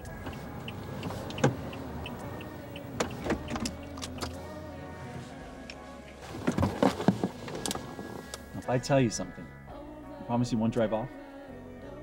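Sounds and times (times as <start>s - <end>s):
car engine idling: 0.0s - 6.4s
soft music drone: 0.0s - 12.0s.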